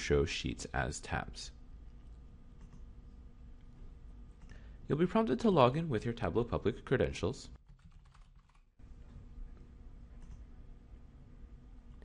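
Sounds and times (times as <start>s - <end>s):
low steady hum: 0.0s - 12.0s
typing on keyboard: 7.6s - 8.7s.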